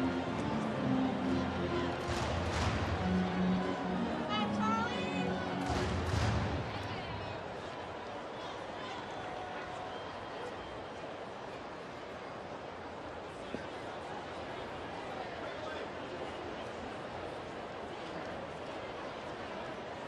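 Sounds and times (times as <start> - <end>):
stadium music over loudspeakers: 0.0 - 7.8
crowd murmur: 0.0 - 20.0.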